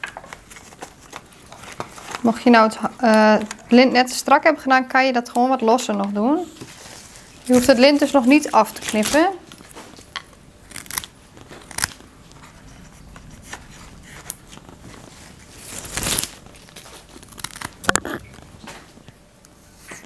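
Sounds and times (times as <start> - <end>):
stem snapping and crunching: 8.8 - 12.1, 15.7 - 18.8
leaves rustling: 11.6 - 17.9.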